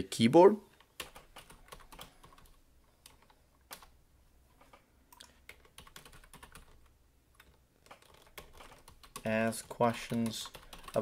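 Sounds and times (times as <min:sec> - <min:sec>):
faint typing on keyboard: 0:00.7 - 0:11.0.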